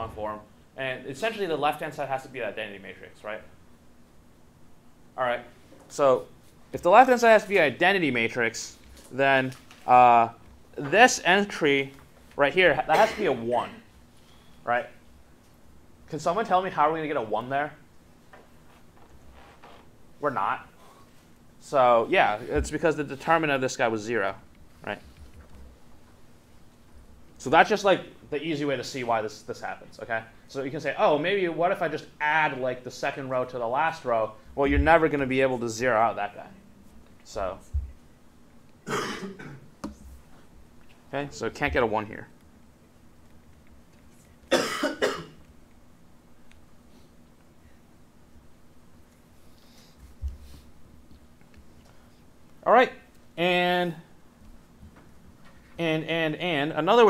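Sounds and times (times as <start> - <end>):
man coughing: 12.9 - 13.8, 38.8 - 39.7, 44.5 - 45.4.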